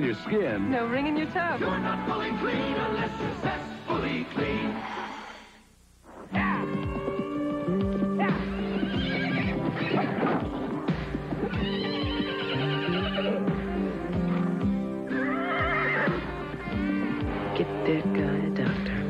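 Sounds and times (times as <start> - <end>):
music: 0.0 - 19.0
hooves clip-clopping: 6.4 - 14.8
horses whinnying: 8.3 - 17.6.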